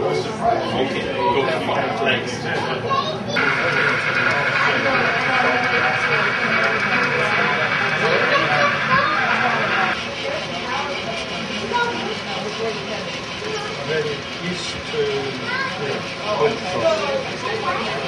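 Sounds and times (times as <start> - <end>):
chatter of visitors and children: 0.0 - 18.0
model train motor whirring: 3.4 - 18.0.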